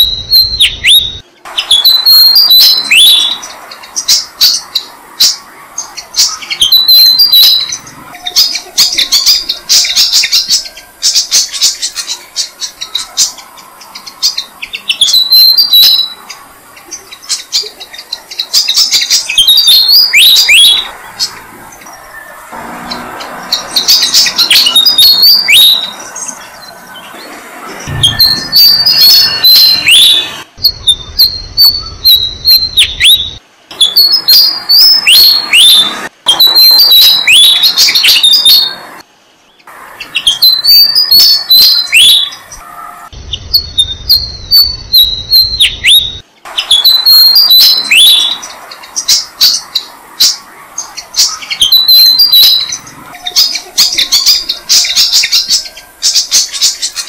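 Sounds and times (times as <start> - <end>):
birds chirping loudly: 0.0 - 57.0.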